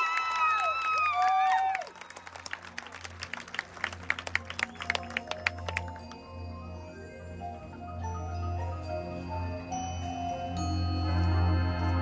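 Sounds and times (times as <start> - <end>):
gentle sustained ringing notes: 4.7 - 12.0.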